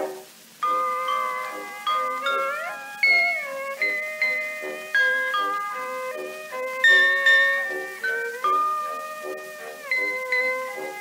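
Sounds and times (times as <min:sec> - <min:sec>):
light orchestral accompaniment: 0:00.0 - 0:11.0
orchestra bells melody: 0:00.6 - 0:11.0.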